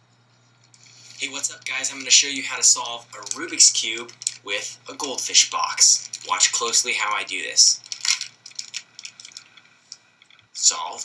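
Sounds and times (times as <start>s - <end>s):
plastic clicks and rattles: 1.5s - 4.4s, 5.9s - 6.5s, 7.8s - 10.5s.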